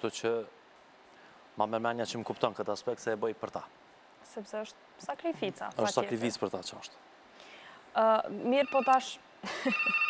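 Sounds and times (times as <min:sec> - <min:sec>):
woman speaking: 0:04.2 - 0:06.2, 0:08.0 - 0:09.2
desk telephone ringing: 0:08.6 - 0:10.0.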